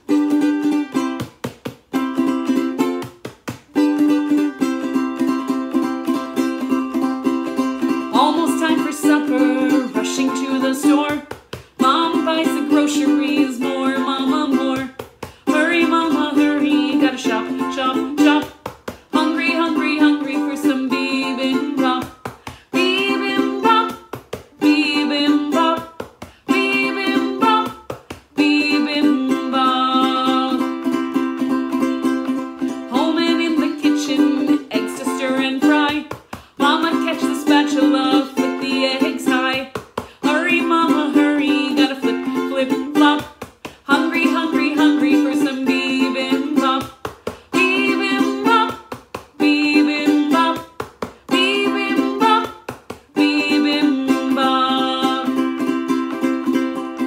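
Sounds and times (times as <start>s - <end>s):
ukulele strumming chords: 0.0s - 57.0s
woman singing: 4.0s - 57.0s.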